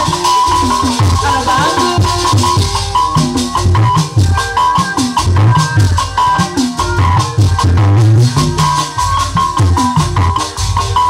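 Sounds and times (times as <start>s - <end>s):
fast rattling percussion: 0.0s - 11.0s
high melody line: 0.0s - 11.0s.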